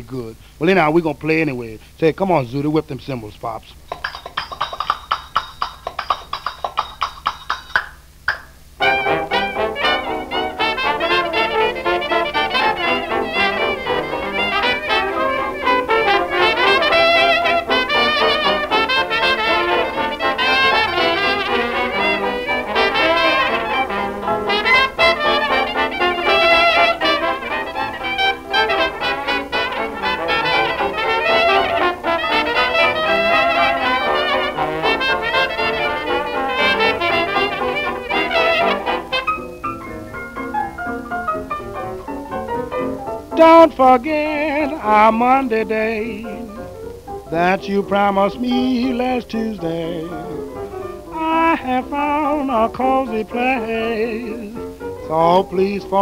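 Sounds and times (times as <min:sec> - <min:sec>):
record hiss: 0:00.0 - 0:56.0
jazz band playing: 0:03.8 - 0:56.0
trumpet: 0:08.8 - 0:39.7.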